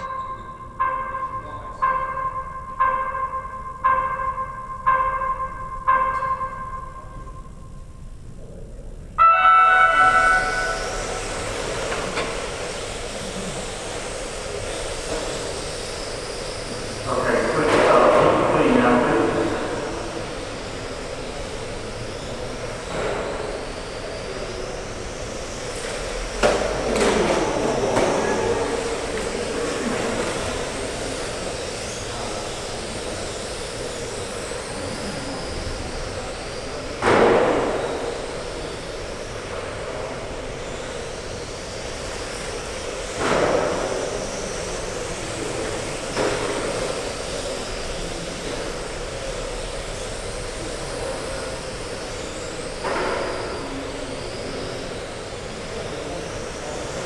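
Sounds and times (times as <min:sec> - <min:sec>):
rc car motors whining: 0:09.4 - 0:57.0.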